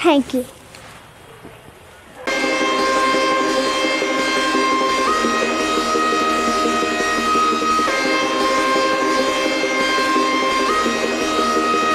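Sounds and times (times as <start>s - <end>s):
music with sustained chords: 2.3s - 11.9s.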